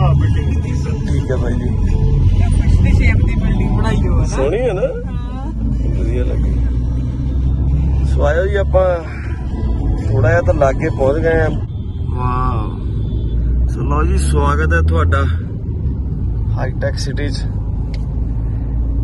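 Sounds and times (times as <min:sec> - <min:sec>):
car cabin road rumble: 0:00.0 - 0:19.0.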